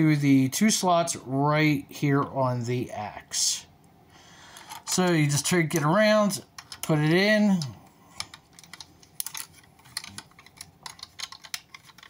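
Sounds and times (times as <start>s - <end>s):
plastic parts clicking together: 4.5s - 12.0s.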